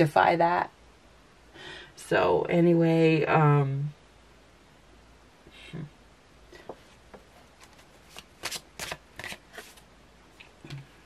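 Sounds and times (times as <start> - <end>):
cards being shuffled: 7.4 - 9.9.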